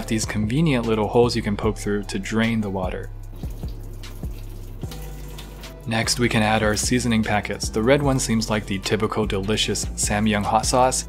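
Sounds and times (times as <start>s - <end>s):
water pouring into steel sink: 3.3s - 7.2s.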